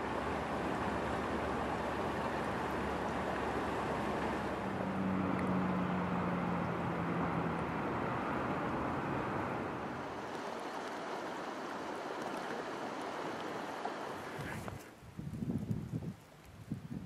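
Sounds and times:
stream water flowing: 0.0 - 15.0.

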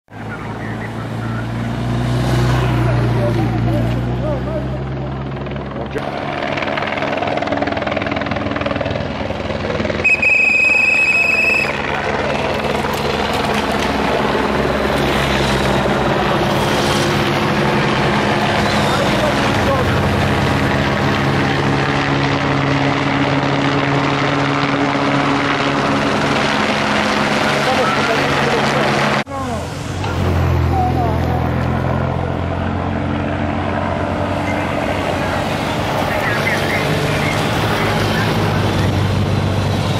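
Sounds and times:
cars and motorcycles passing: 0.1 - 39.9
helicopter overhead: 0.1 - 39.9
loud high steady tone: 9.9 - 12.4.

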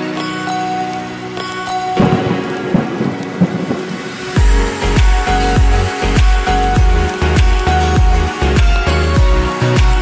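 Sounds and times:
rain hiss: 0.0 - 10.0
low thunder rumbles: 2.0 - 5.8.

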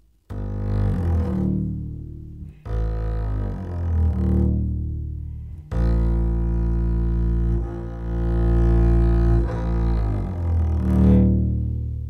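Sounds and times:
bowed low string instrument: 0.0 - 12.0.

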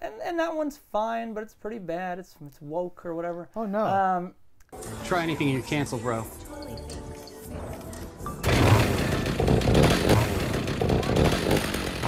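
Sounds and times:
chainsaw engine revving: 8.4 - 12.0.

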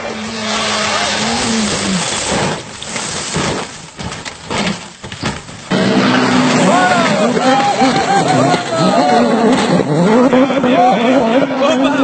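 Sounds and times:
gravel spraying: 0.2 - 4.1
rally car engine: 5.7 - 12.0
spectators shouting excitedly: 6.3 - 9.5.

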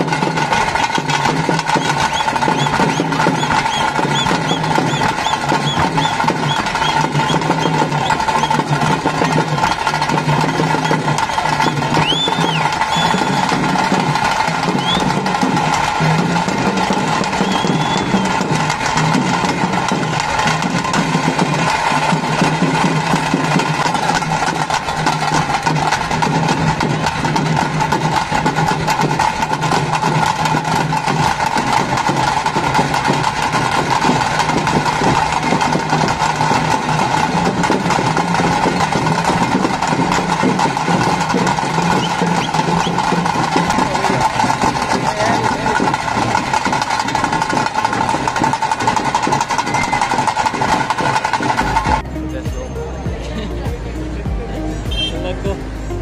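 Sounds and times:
fast stick drumming: 0.0 - 52.1.

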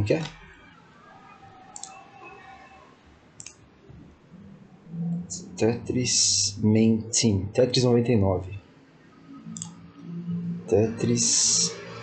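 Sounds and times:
computer mouse click: 1.8 - 2.0.

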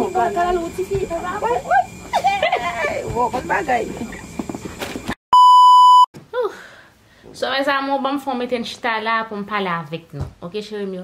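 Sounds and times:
loud high test-tone beep: 5.3 - 6.1.

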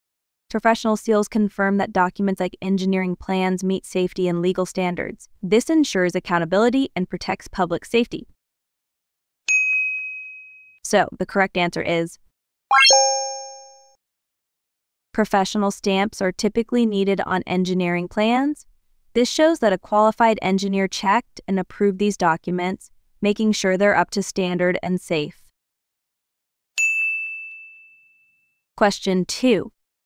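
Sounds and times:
bell-like ding: 9.5 - 10.8, 12.7 - 13.9, 26.8 - 28.4.

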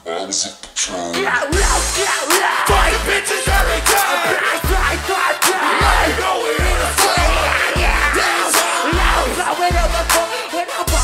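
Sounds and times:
rapping over a beat: 0.7 - 11.0
live crunkcore music: 1.2 - 11.0.

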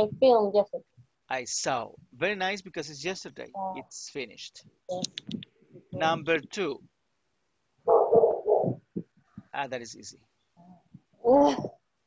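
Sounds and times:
muffled garbled voice: 4.9 - 6.8.

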